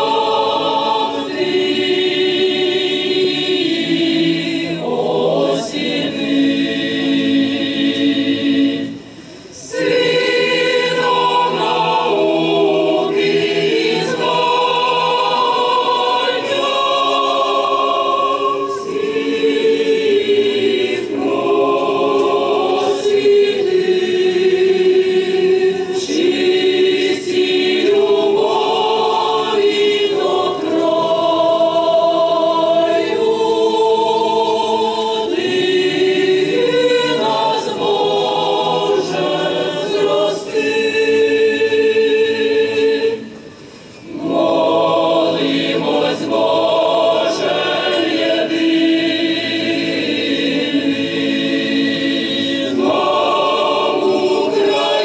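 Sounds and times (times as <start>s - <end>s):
choir singing unaccompanied: 0.0s - 55.0s.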